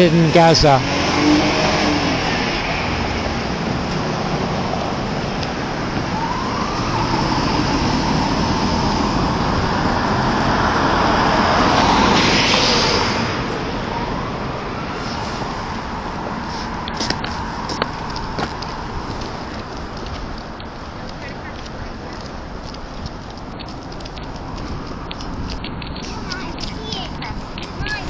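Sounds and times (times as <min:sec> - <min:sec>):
vehicle passing close: 0:00.0 - 0:20.7
cars driving past: 0:00.0 - 0:28.0.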